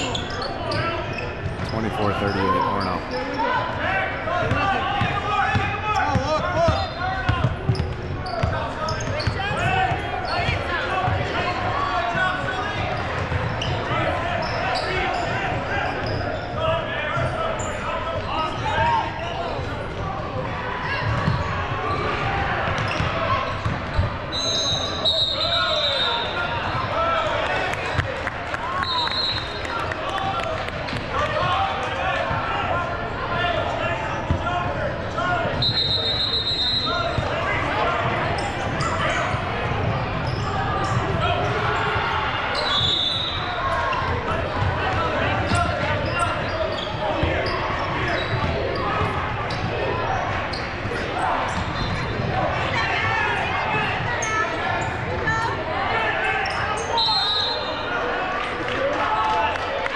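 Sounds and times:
murmur of voices: 0.0s - 59.9s
basketball bouncing on court: 4.4s - 10.1s, 20.9s - 24.2s, 44.0s - 49.9s.

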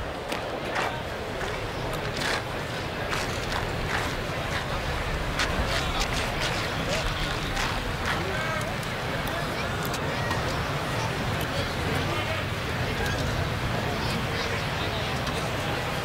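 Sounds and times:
crowd murmur: 0.0s - 16.0s.

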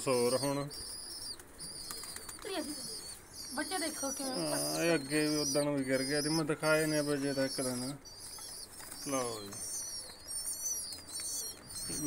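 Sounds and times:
birds chirping: 0.0s - 12.0s
falling bird call: 0.0s - 12.0s.

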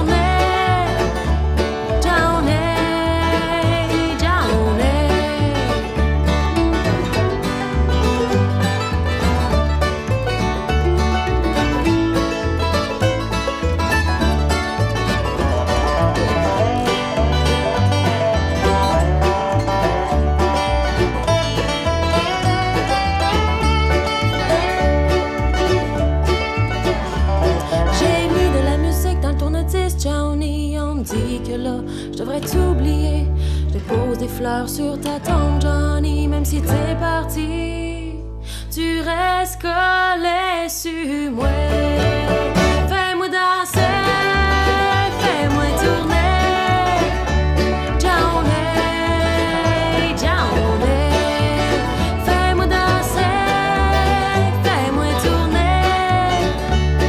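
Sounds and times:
resonator guitar sliding notes: 0.0s - 40.1s, 41.4s - 57.0s
acoustic guitar: 0.0s - 57.0s
bass line: 0.0s - 57.0s
mandolin: 0.0s - 57.0s.

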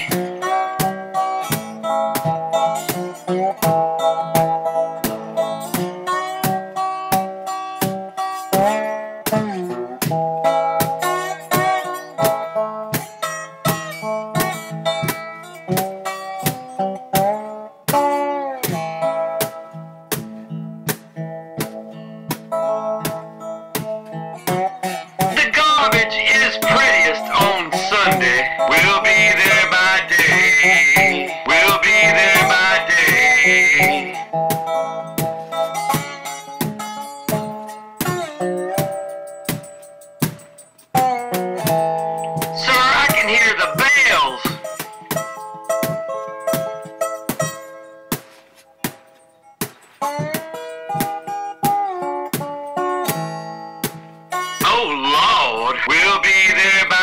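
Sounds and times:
plucked acoustic guitar melody: 0.0s - 57.0s.

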